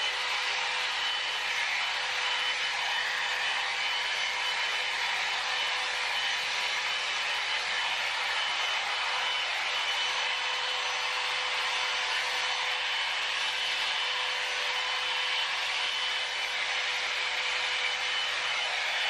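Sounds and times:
hot air styling brush whining: 0.0 - 19.0.

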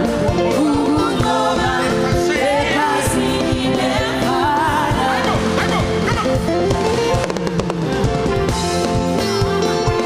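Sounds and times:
band playing held chords: 0.0 - 10.0.

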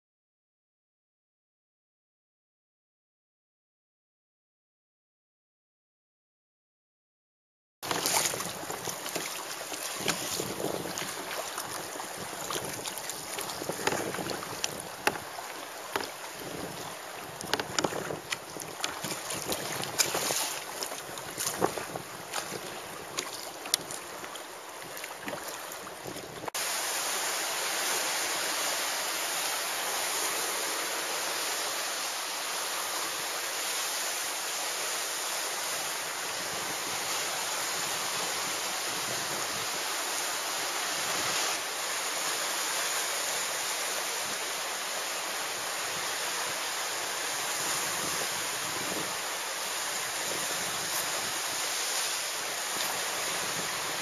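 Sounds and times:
wind on microphone: 7.8 - 26.5, 35.6 - 41.6, 45.6 - 54.0
sea water splashing: 7.8 - 54.0
steady rush of wind and sea: 7.8 - 54.0.

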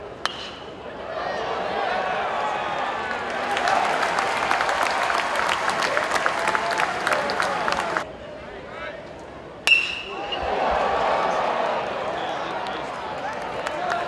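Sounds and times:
crowd chatter: 0.0 - 14.0
crowd cheering: 0.9 - 8.1, 9.7 - 14.0
scattered clapping: 3.1 - 8.0, 12.6 - 14.0
metal bat hitting ball: 9.7 - 10.4.

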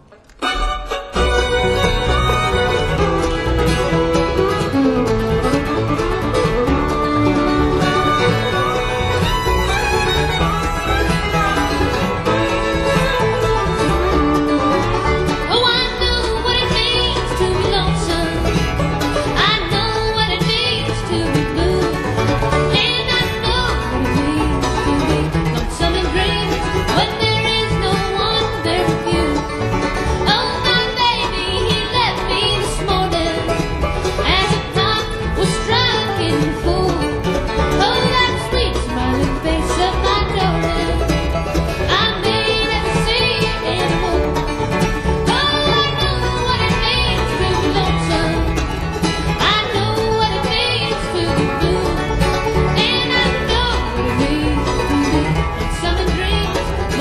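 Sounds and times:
bluegrass band playing: 0.0 - 57.0.

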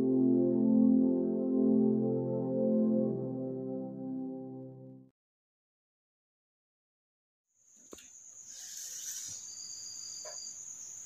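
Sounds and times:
insects chirring: 7.6 - 11.0.

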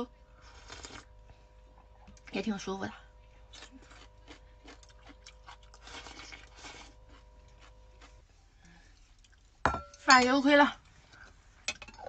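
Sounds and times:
faint steady hum: 0.0 - 12.0
soft chewing: 3.1 - 9.6.

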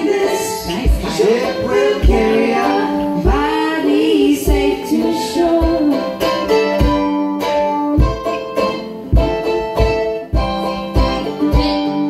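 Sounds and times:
plucked string instrument: 0.0 - 12.0
strummed ukulele: 0.0 - 12.0.

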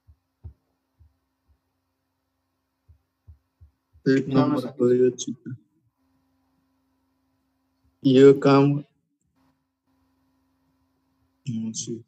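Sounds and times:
soft low thumps: 0.0 - 1.7, 2.8 - 4.3
steady low hum: 0.0 - 12.0.

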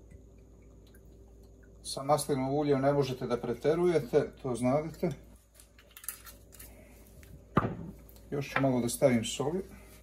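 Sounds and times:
bottle set down on counter: 7.6 - 8.0.

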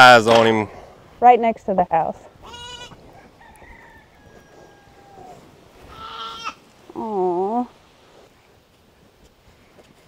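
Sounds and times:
farm animal calling: 2.3 - 6.7
distant drawn-out animal calls: 2.4 - 6.7.

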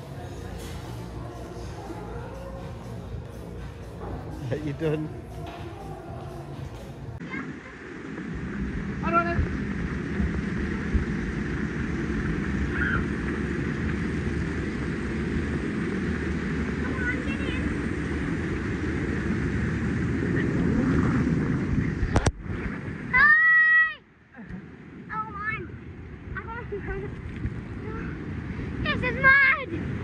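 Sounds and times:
water rushing down slide tube: 7.2 - 24.0
child shouting: 23.1 - 24.0.

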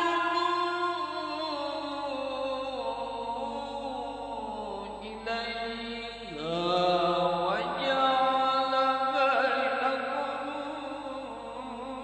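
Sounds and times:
man reciting melodically into microphone: 0.0 - 12.0.

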